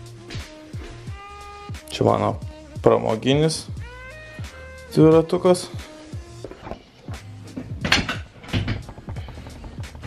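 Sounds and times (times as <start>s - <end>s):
background music: 0.0s - 10.0s
knocks and clatters of handled objects: 7.6s - 10.0s.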